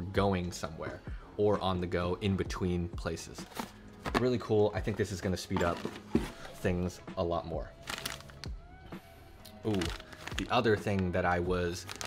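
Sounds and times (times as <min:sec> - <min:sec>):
plastic packaging clicks and rustles: 0:07.8 - 0:08.5, 0:09.6 - 0:11.1, 0:11.7 - 0:12.0.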